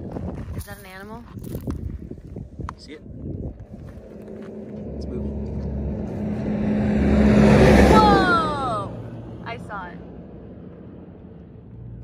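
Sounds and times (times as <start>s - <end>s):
vehicle engine idling: 3.6s - 12.0s.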